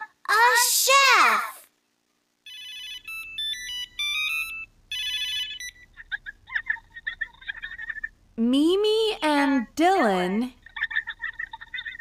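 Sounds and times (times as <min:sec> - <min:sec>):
electronic ringtone melody: 0:02.4 - 0:06.0.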